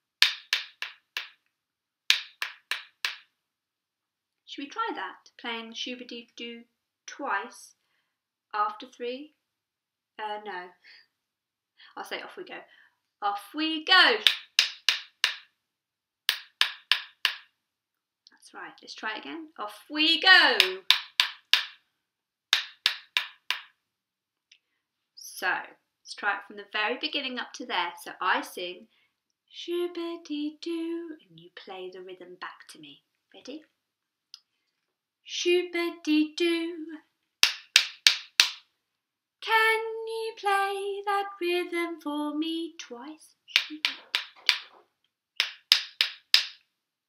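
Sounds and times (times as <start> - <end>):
wooden rhythm sticks clicking: 0.1 - 1.5, 2.1 - 3.3, 14.1 - 15.5, 16.3 - 17.5, 20.2 - 21.8, 22.5 - 23.8, 37.4 - 38.7, 43.5 - 44.8, 45.4 - 46.6.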